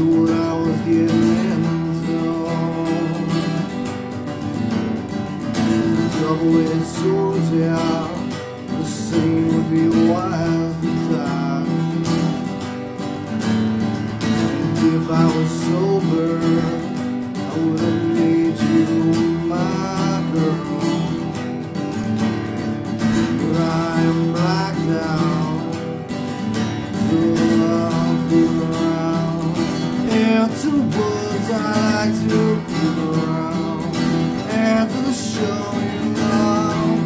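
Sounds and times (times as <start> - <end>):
acoustic guitar strumming: 0.0 - 37.0
man singing: 0.0 - 37.0.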